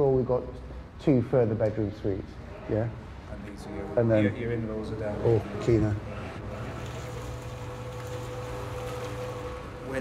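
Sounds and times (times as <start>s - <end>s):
cement mixer motor hum: 6.4s - 10.0s.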